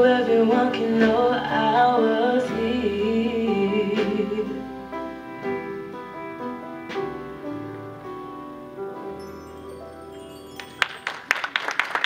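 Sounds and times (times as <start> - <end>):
acoustic guitar and piano chord: 0.0 - 11.0
audience clapping: 10.3 - 12.0.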